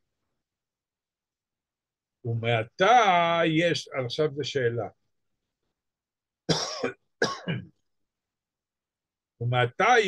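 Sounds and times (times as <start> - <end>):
man coughing: 6.5 - 7.8.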